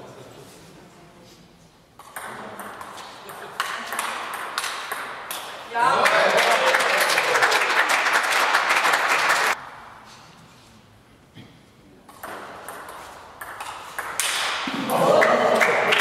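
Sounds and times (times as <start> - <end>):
table tennis ball bouncing: 2.0 - 5.6, 12.1 - 15.0
people clapping: 3.6 - 9.6, 14.2 - 16.0.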